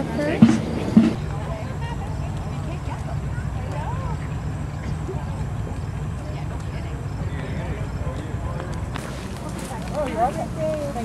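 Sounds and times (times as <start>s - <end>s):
people talking indistinctly: 0.0s - 11.0s
steady low rumble: 0.0s - 11.0s.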